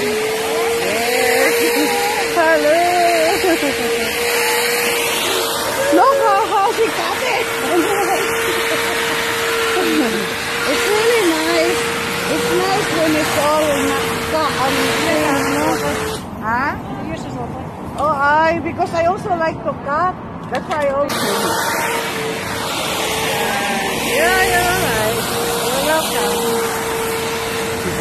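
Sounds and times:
people talking: 0.0s - 4.9s, 5.8s - 9.0s, 9.7s - 21.8s, 23.2s - 26.6s
electric lawnmower whining: 0.0s - 16.3s, 20.9s - 28.0s
people laughing: 0.6s - 10.4s, 27.8s - 28.0s.

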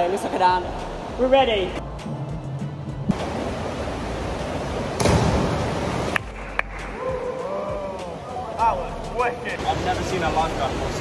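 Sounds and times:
steady rushing noise: 3.1s - 6.9s
loud splash into water: 5.0s - 6.2s.

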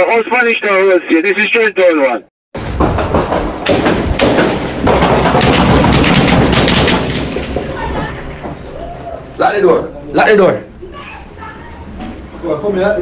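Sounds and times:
gunshots: 2.6s - 8.5s
constant heavy noise: 2.6s - 13.0s.

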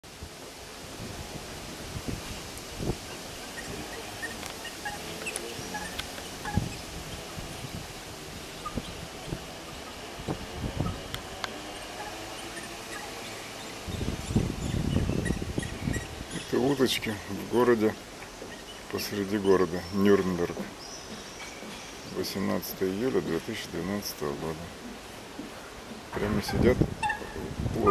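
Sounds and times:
flowing water: 0.0s - 27.9s
high bird calls: 2.9s - 23.2s, 26.0s - 27.9s
low bumps and rumble: 24.6s - 27.9s.

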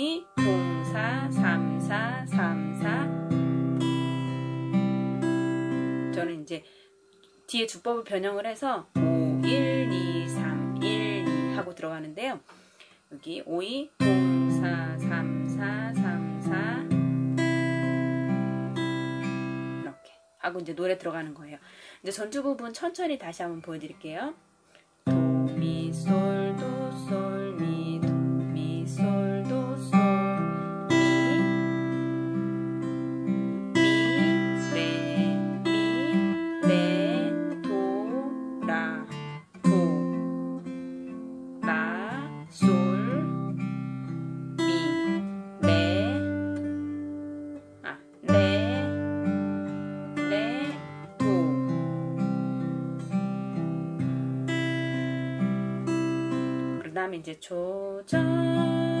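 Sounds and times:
fingerstyle acoustic guitar: 0.2s - 6.4s, 8.9s - 11.9s, 14.0s - 20.3s, 25.0s - 57.0s, 58.1s - 59.0s.

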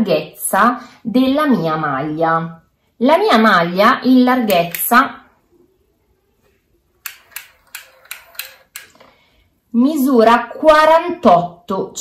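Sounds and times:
tape measure clicking: 4.4s - 5.0s, 7.0s - 9.1s.

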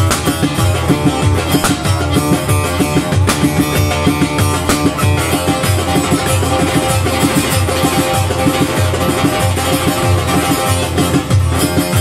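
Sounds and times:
steady low beat: 0.0s - 10.8s
amplified saz plucking: 0.0s - 12.0s.

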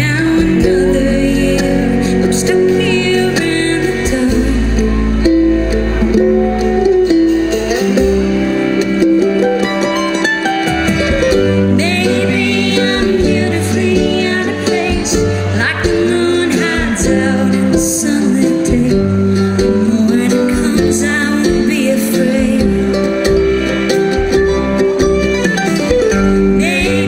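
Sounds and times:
live bluegrass band playing: 0.0s - 27.0s.

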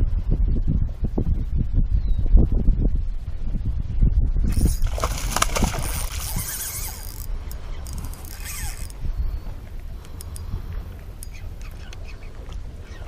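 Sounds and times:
fish splashing in water: 4.6s - 7.1s.

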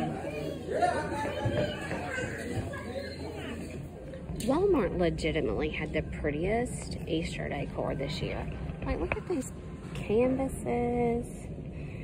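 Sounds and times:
crowd chatter in large hall: 0.0s - 12.0s.

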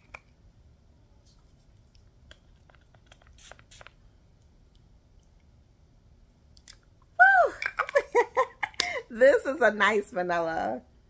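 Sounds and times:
pump bottle spraying: 3.0s - 3.9s
woman vocalising delightedly: 7.2s - 7.7s.

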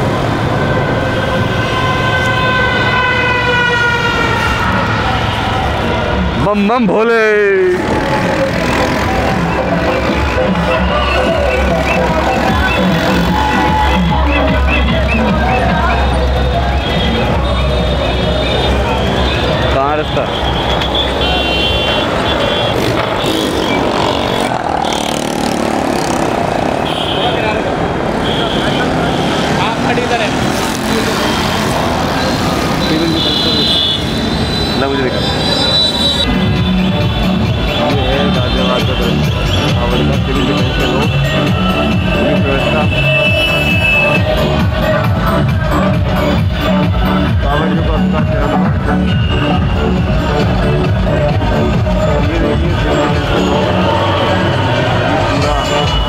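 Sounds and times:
crowd voices: 0.0s - 56.0s
motorcycle engines passing: 0.0s - 56.0s
road and wind noise: 0.0s - 56.0s.

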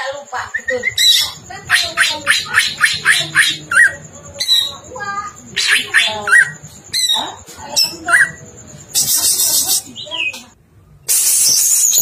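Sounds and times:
bird singing varied song: 0.1s - 12.0s.

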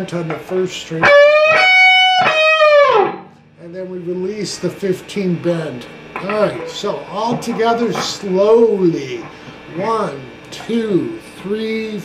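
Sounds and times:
electric guitar string bends: 0.2s - 4.4s, 5.4s - 10.5s.

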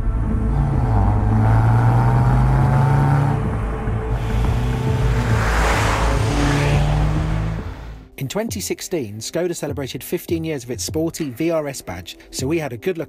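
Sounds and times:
car engine accelerating: 0.0s - 8.1s
wind and road noise: 0.0s - 8.1s.

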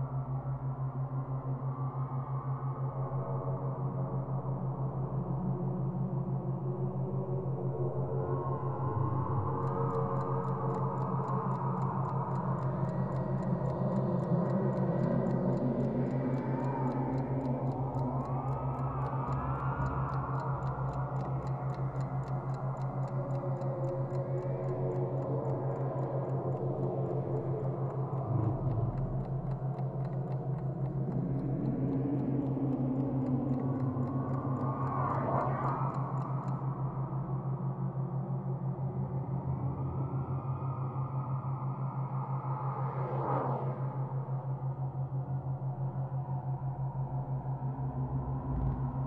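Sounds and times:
low hum: 8.0s - 41.8s, 43.3s - 49.0s
clock-like ticking: 9.2s - 37.4s.

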